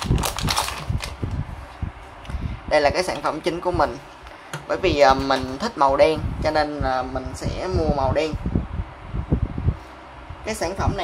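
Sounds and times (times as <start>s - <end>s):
plastic bag crinkling: 0.0s - 1.4s.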